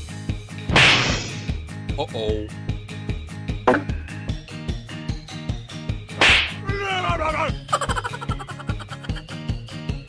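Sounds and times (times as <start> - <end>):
background music with steady beat: 0.0 - 10.0
sharp whip-crack hit: 0.7 - 1.5, 6.2 - 6.6.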